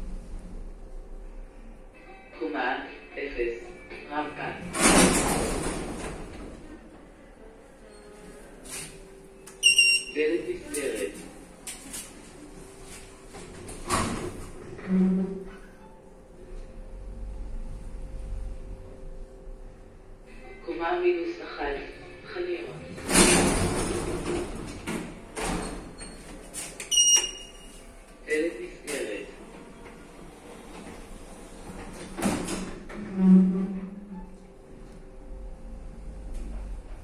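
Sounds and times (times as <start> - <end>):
sliding doors running: 4.6 - 7.1, 22.9 - 26.9, 29.4 - 37.0
short high electronic beep: 9.6 - 10.2, 26.9 - 27.7.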